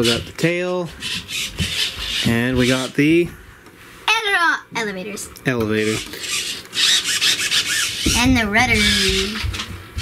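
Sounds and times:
servos buzzing with gear noise: 1.0 - 3.0, 5.7 - 9.7.

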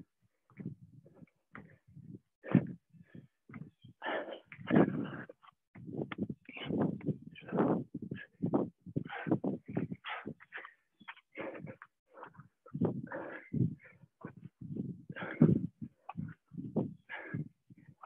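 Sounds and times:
people breathing heavily: 1.1 - 5.5, 6.1 - 18.0.

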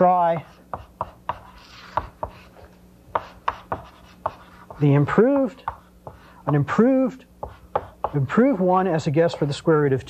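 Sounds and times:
chalk tapping on blackboard: 0.2 - 6.8, 7.4 - 9.7.

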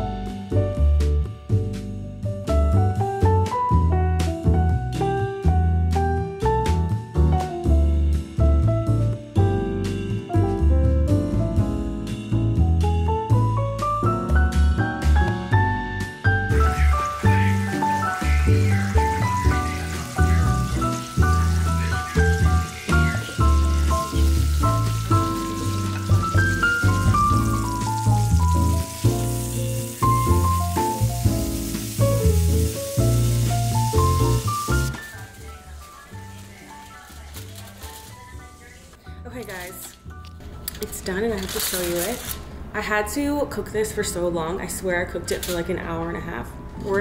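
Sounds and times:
woman's voice: 35.0 - 40.0, 40.8 - 47.0.

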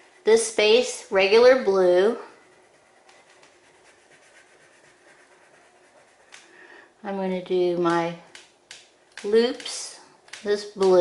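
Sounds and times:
crayon scribbling on paper: 0.0 - 6.5.

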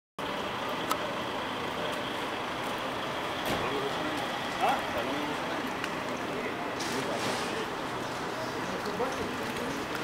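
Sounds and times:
street noise: 0.2 - 10.0
vehicle engine hum: 0.2 - 10.0.

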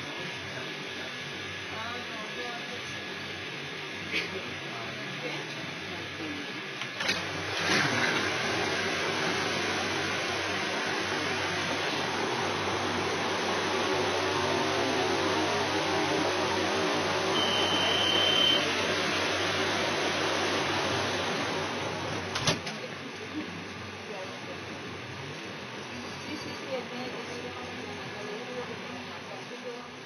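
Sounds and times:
station hubbub: 0.0 - 30.0
high warning tone: 17.2 - 19.6.

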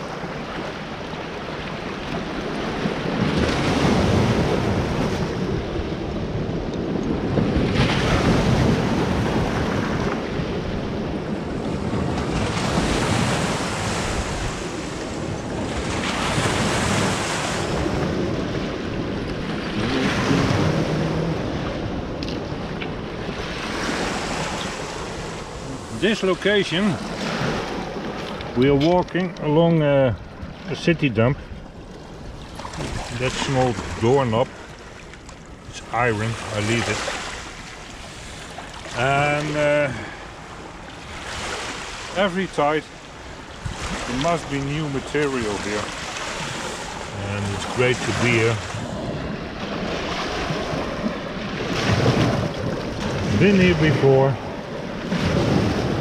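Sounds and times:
waves washing over stones: 0.0 - 30.0, 30.6 - 56.0
wind on microphone: 2.0 - 29.4, 43.2 - 56.0.

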